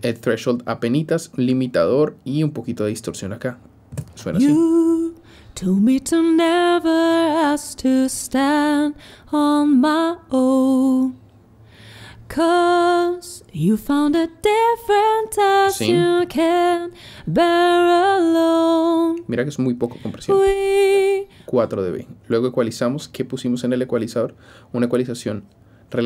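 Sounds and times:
woman singing: 0:04.4 - 0:11.2, 0:12.3 - 0:19.2, 0:20.1 - 0:21.3.

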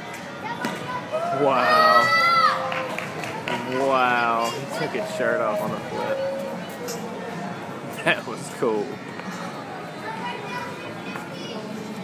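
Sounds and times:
street noise: 0:00.0 - 0:12.0
people and children talking: 0:00.1 - 0:12.0.

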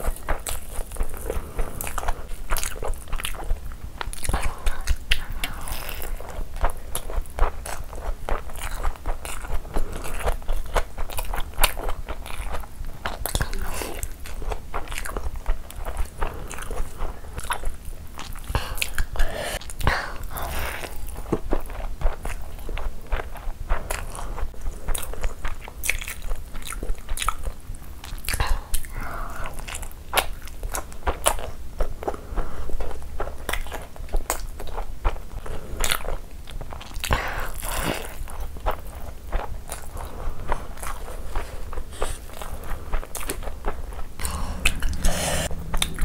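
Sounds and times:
person chewing with wet mouth sounds: 0:00.0 - 0:46.0
small mouth clicks and smacks: 0:24.9 - 0:32.2.

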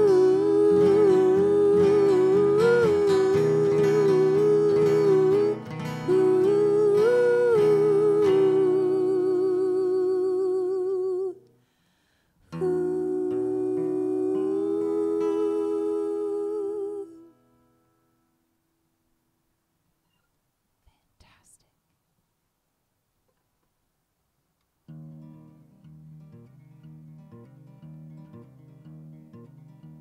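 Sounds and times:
voices singing in harmony: 0:00.0 - 0:11.4, 0:12.5 - 0:17.3
acoustic guitar: 0:00.0 - 0:19.3, 0:24.8 - 0:30.0.

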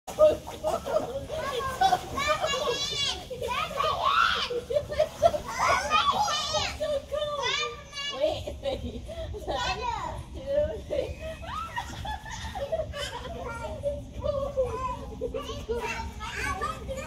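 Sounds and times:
children squealing and shouting: 0:01.4 - 0:08.2.

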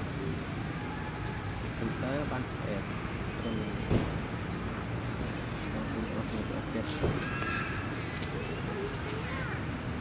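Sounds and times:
faint distant voices: 0:05.5 - 0:10.0.

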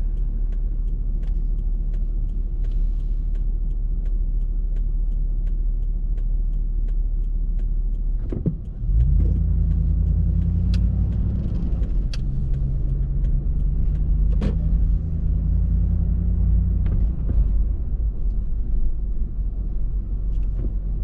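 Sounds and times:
car engine and road rumble: 0:00.0 - 0:21.0
turn signal ticking: 0:00.0 - 0:21.0.

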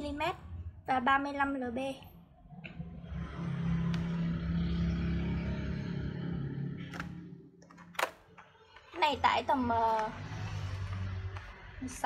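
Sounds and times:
vehicle engine passing by: 0:02.8 - 0:07.5, 0:09.6 - 0:12.0.

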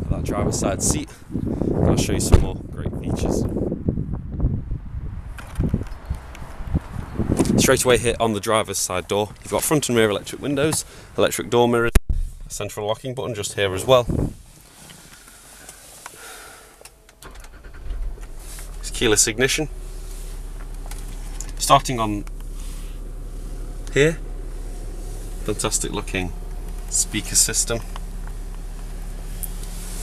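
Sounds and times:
low steady engine hum: 0:00.0 - 0:12.8, 0:13.4 - 0:30.0.

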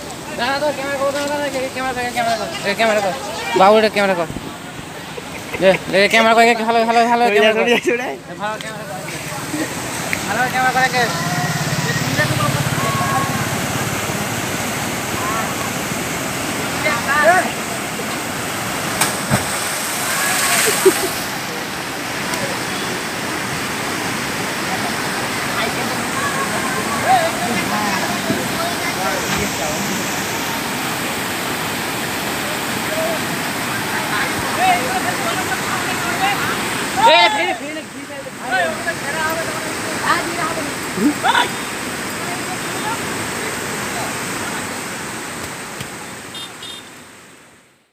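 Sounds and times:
faint voices: 0:00.0 - 0:16.0, 0:24.2 - 0:44.8
floodwater rushing: 0:00.0 - 0:47.7
people calling out: 0:11.0 - 0:13.8, 0:25.5 - 0:29.4, 0:32.8 - 0:37.6.

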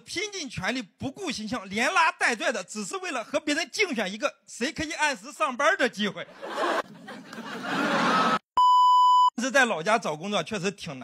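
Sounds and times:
noisy laughter-like burst: 0:07.5 - 0:08.4
steady test-tone beep: 0:08.6 - 0:09.4.

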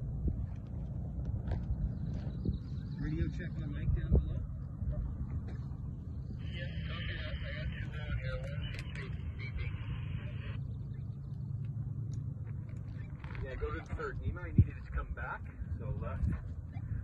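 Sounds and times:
wind buffeting microphone: 0:00.0 - 0:08.4, 0:13.0 - 0:17.0
two-way radio static hiss: 0:06.4 - 0:10.6.

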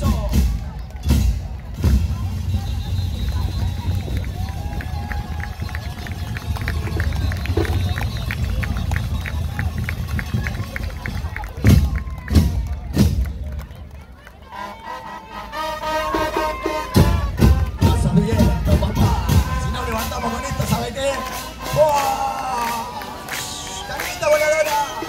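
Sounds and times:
brass held notes: 0:14.4 - 0:22.5.

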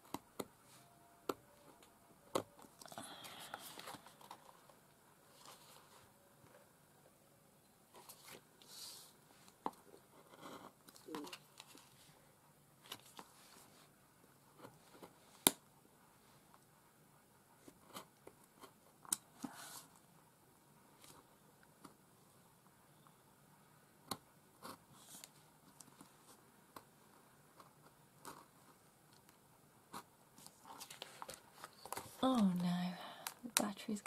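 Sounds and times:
paper rustling: 0:30.4 - 0:32.2.

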